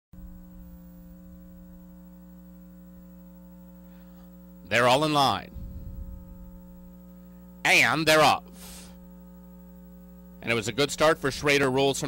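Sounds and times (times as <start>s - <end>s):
electrical mains hum: 0.2s - 12.0s.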